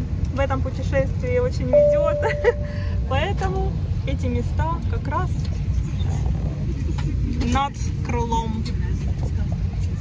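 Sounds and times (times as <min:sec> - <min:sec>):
airliner cabin rumble: 0:00.0 - 0:10.0.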